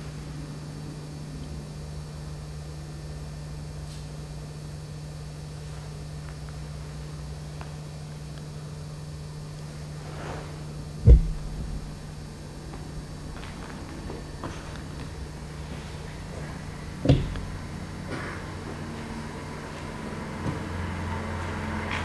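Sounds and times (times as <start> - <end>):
low electrical hum with hiss: 0.0 - 21.8
heavy low thump: 11.0 - 14.7.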